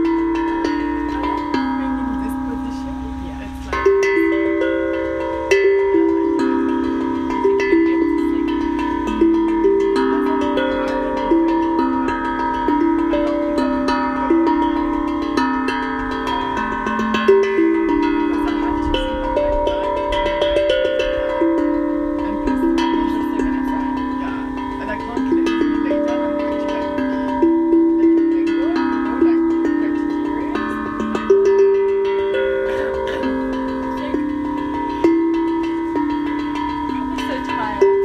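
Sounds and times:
steel tongue drum melody: 0.0 - 38.0.

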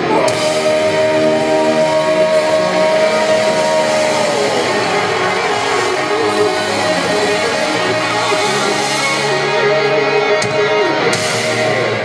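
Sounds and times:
distorted guitars: 0.0 - 12.0
live thrash metal band: 0.0 - 12.0.

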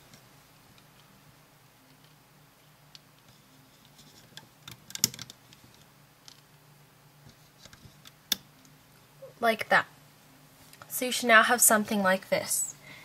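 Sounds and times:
rubber bands clicking on plastic pegs: 4.6 - 5.4.

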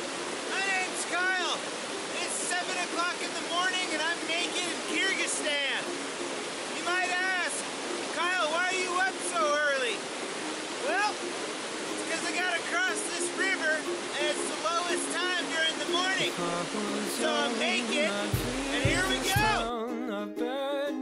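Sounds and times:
whitewater river rushing: 0.0 - 19.7.

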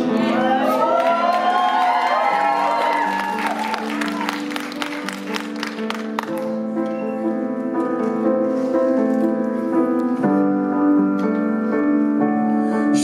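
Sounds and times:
slow piano chords: 0.0 - 13.0
applause: 0.9 - 6.6.

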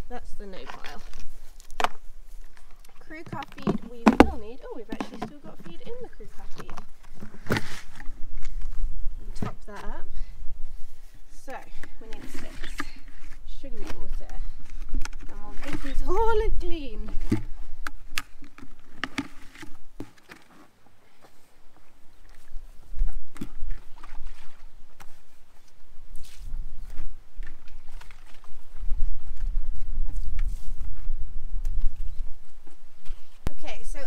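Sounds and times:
plastic buckets knocking and clicking: 3.2 - 7.7.

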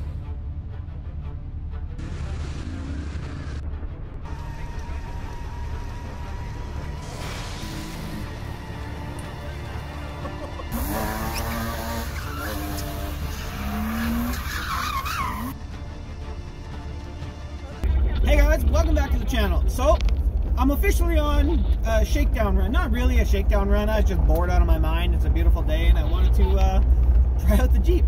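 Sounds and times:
car engine: 0.0 - 15.6, 17.8 - 28.0
soundtrack music: 0.0 - 20.7
tires squealing: 4.2 - 15.6.

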